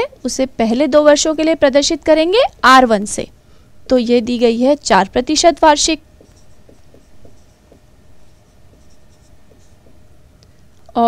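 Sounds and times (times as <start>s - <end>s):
marker squeaking on whiteboard: 5.3s - 10.2s.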